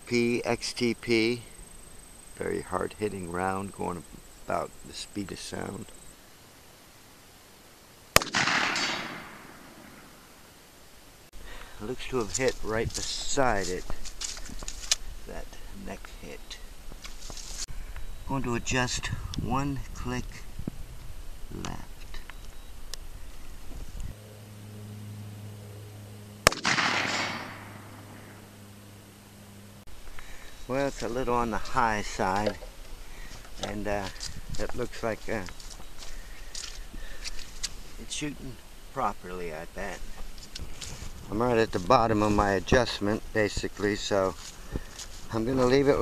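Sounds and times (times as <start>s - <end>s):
steady low hum: 0.0s - 46.0s
revolver gunshot: 8.1s - 10.2s, 26.4s - 28.4s.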